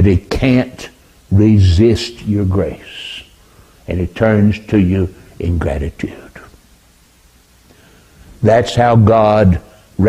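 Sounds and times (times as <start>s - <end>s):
man's voice: 0.0s - 3.3s, 3.9s - 6.6s, 8.4s - 10.0s
soft breath: 3.4s - 3.8s, 7.7s - 8.4s.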